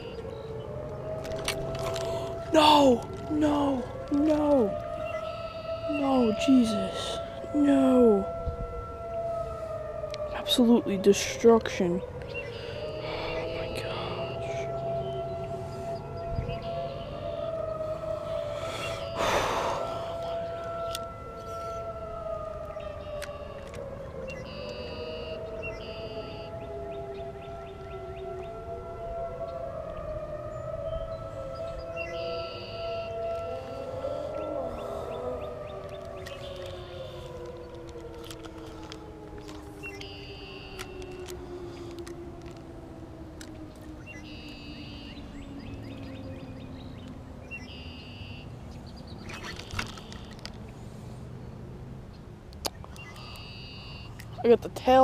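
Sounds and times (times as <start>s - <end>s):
sirens winding up and down: 0.0s - 50.8s, 52.6s - 55.0s.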